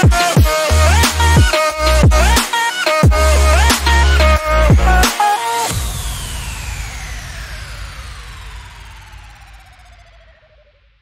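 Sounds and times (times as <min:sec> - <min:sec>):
descending electronic whine: 0:05.6 - 0:11.0
noisy wash and low rumble: 0:05.7 - 0:11.0.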